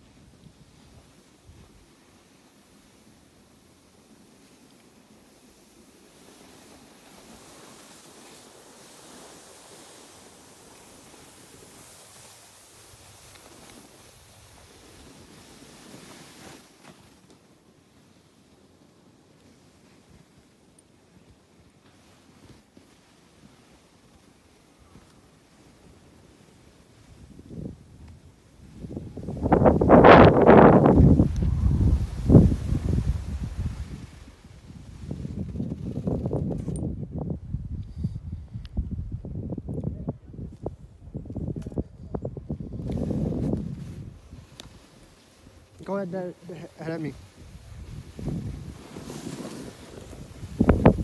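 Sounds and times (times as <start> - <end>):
skis sliding over snow: 0.0 - 36.8, 42.7 - 51.0
wind on microphone: 27.2 - 45.1, 47.2 - 51.0.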